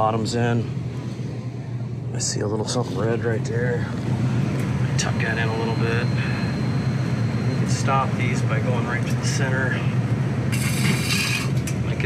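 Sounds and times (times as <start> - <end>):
low hum of running fans: 0.0 - 12.0
pliers scraping spinning fan hub: 10.5 - 11.8.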